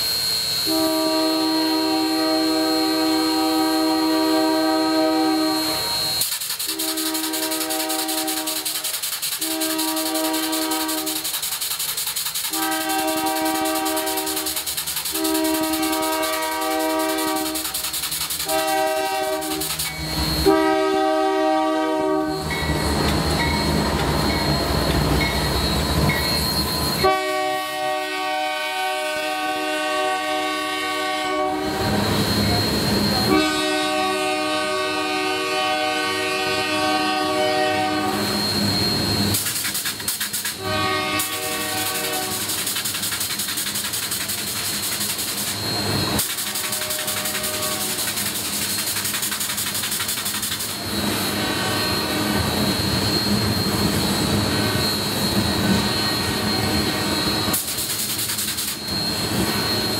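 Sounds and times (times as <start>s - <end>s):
locomotive air horn blasts: 0.6s - 11.3s, 12.5s - 17.8s, 18.4s - 19.7s, 20.4s - 22.4s, 27.0s - 32.0s, 33.2s - 38.5s, 40.5s - 42.5s, 46.3s - 48.1s.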